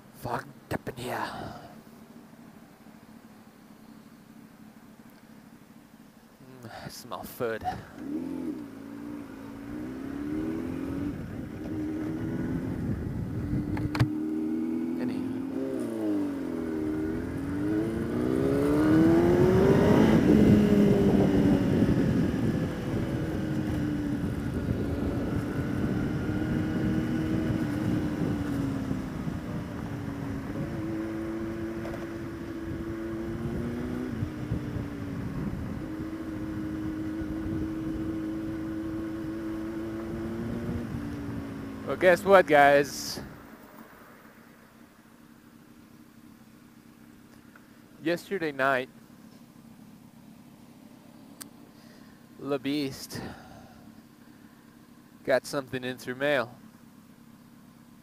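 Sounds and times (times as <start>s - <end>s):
motorcycle engine revving: 7.6s - 43.6s.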